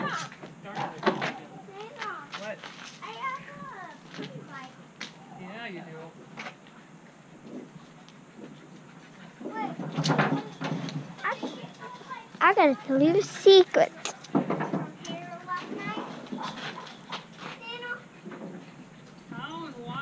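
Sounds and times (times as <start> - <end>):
children and adults talking: 0.0 - 7.3, 8.8 - 20.0.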